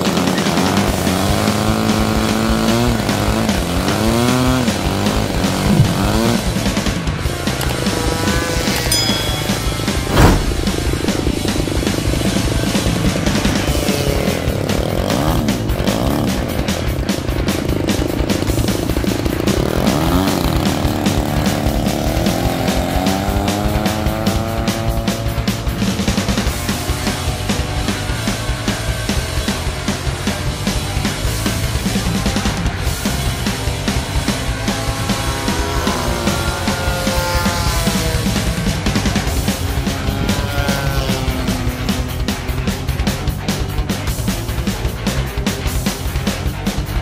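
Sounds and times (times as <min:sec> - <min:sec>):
sharp knock: 0:08.9 - 0:12.0.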